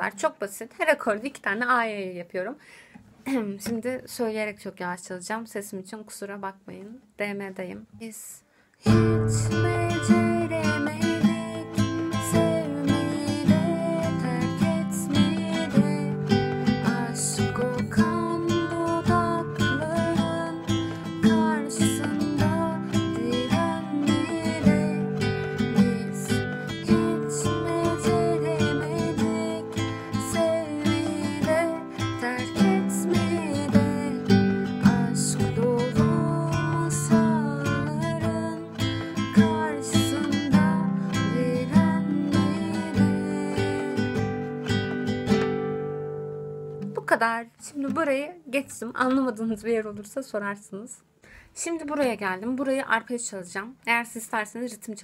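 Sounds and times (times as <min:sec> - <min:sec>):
woman singing: 0:08.8 - 0:44.5
acoustic guitar strumming: 0:08.8 - 0:47.2.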